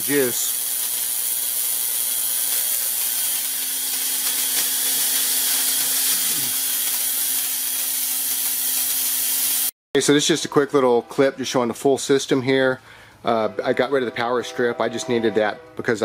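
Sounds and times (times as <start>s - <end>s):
spark gap hissing: 0.0s - 9.7s.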